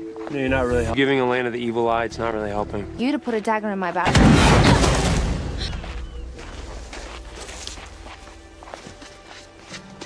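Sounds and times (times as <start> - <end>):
soft background music: 0.0 - 4.1, 5.9 - 10.0
footsteps on gravel: 5.6 - 10.0.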